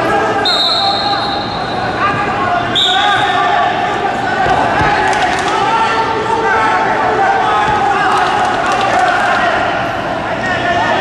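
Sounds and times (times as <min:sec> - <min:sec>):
voices shouting and echoing: 0:00.0 - 0:11.0
high steady whistle tone: 0:00.4 - 0:01.9, 0:02.7 - 0:03.4.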